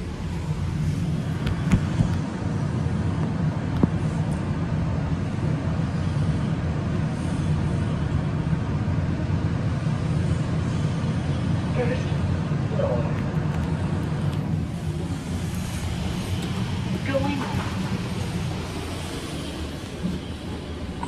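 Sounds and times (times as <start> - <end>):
elevator hum and rumble: 0.0 - 21.0.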